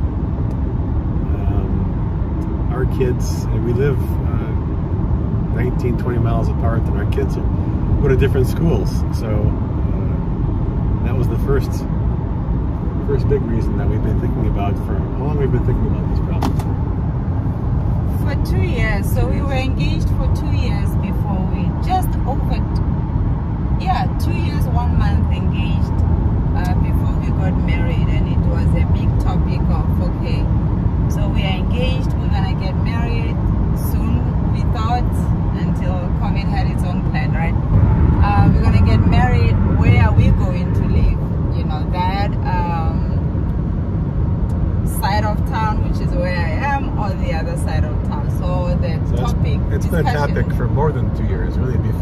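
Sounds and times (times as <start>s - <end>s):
car road and engine noise: 0.0s - 52.0s.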